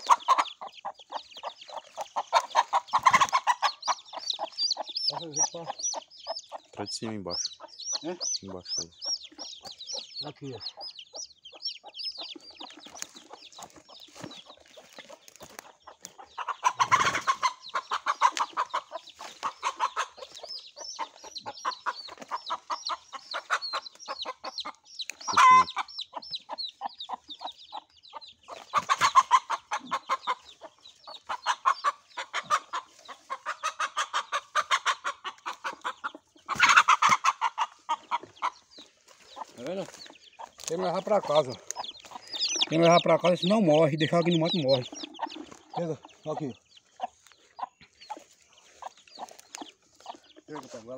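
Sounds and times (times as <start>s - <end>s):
chicks cheeping: 0.0s - 50.9s
hen clucking: 0.0s - 50.9s
hen squawk: 25.3s - 25.9s, 31.2s - 38.6s.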